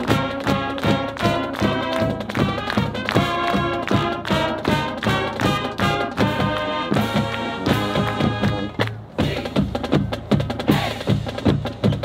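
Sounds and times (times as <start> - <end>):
brass chords: 0.0 - 9.6
drum beat: 0.0 - 12.0.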